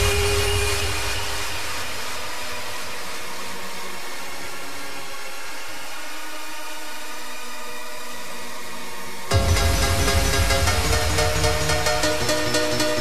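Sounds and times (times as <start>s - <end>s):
dance track kick and bass: 9.3s - 13.0s.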